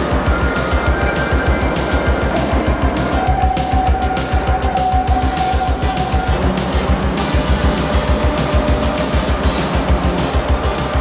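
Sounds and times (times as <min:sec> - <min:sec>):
music with fast beat: 0:00.0 - 0:11.0.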